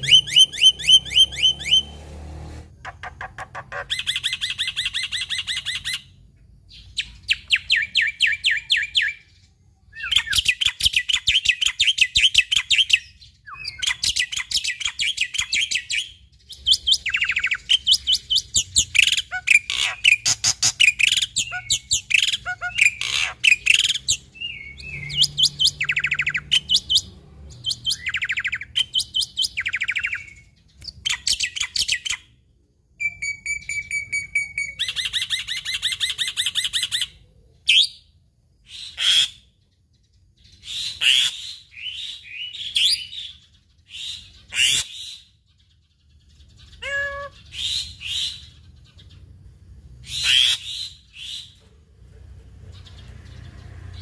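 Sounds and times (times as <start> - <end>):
starling chattering song: 0.0 - 2.0, 2.7 - 6.1, 16.5 - 30.3.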